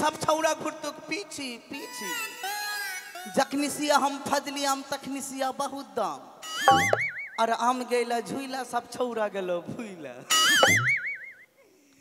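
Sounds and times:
wobbling warbling rising tone: 0:06.7 - 0:07.4, 0:10.4 - 0:11.3.

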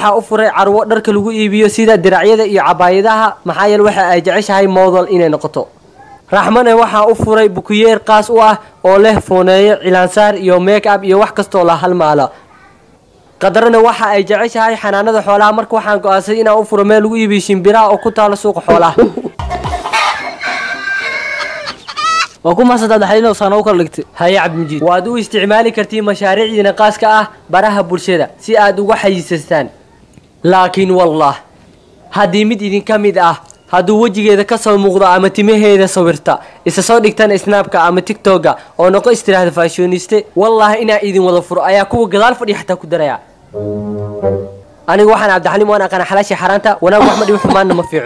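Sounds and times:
rooster crowing: 0:19.7 - 0:22.3
low horn-like notes: 0:43.5 - 0:44.9.

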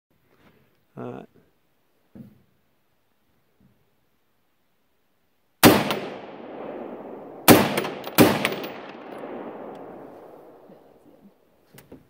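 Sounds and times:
rifle shots with rolling echo: 0:05.6 - 0:11.2.

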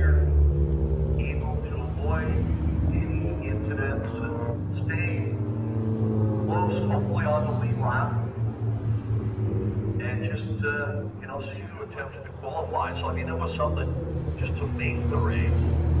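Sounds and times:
announcer's voice: 0:00.0 - 0:00.3, 0:01.2 - 0:05.4, 0:06.4 - 0:08.3, 0:10.0 - 0:15.7
stock car engines droning: 0:00.0 - 0:16.0.

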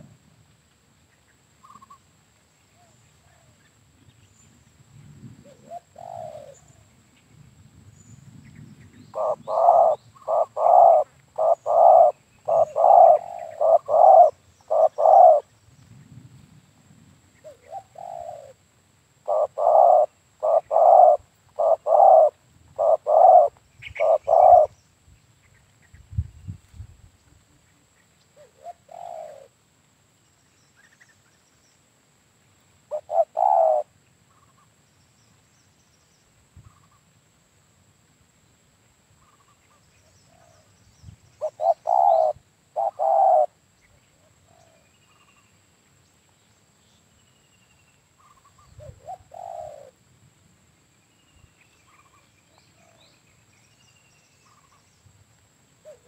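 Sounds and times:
dove cooing: 0:05.4 - 0:06.8, 0:09.1 - 0:15.5, 0:17.4 - 0:18.6, 0:19.2 - 0:24.7, 0:28.4 - 0:29.5, 0:32.9 - 0:33.9, 0:41.4 - 0:43.6, 0:48.2 - 0:50.0.

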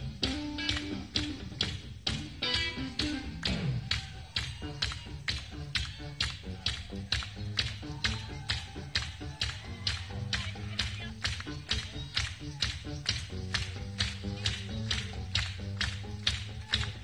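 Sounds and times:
funk band playing: 0:00.0 - 0:03.8.

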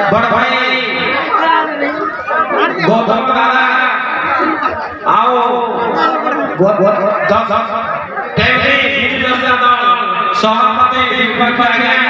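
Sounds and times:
people talking at once: 0:00.0 - 0:12.0
voice over a microphone: 0:00.0 - 0:12.0.

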